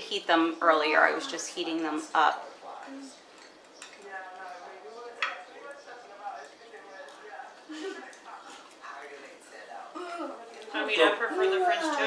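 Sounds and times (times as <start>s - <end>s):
quiet indistinct talk: 0.6s - 12.0s.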